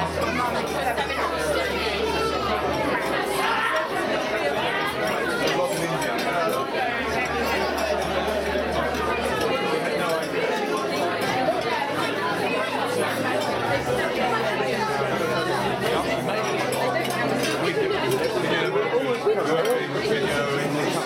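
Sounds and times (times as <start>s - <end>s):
babble of overlapping voices: 0.0s - 21.0s.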